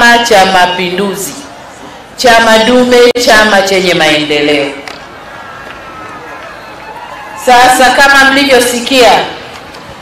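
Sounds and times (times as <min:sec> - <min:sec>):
outdoor crowd murmur: 0:00.0 - 0:10.0.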